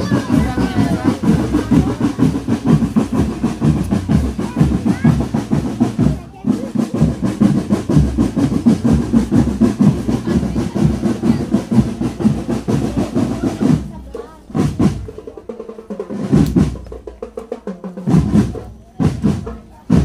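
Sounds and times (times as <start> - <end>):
marching drum band: 0.0 - 20.0.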